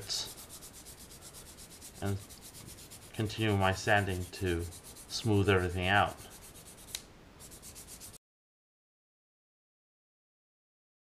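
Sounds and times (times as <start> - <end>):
sanding stick rasping on plastic: 0.0 - 8.2.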